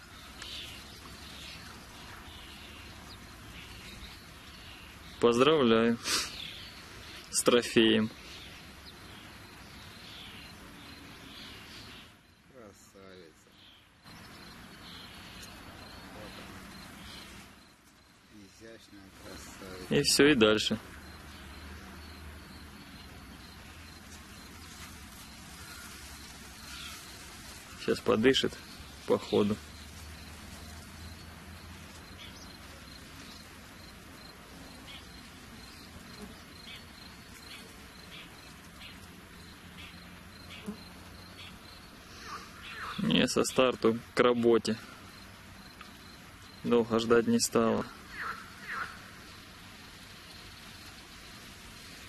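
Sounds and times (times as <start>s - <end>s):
steady hiss: 0.0s - 52.0s
insect chirping in pulses: 6.2s - 12.5s, 13.8s - 43.3s, 44.8s - 52.0s
high-pitched insect chirping: 29.6s - 43.2s.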